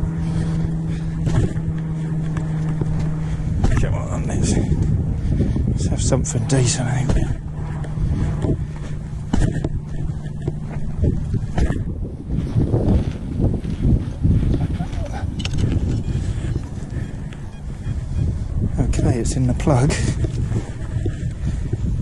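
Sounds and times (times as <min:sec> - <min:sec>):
wind rumbling on microphone: 0:00.0 - 0:22.0.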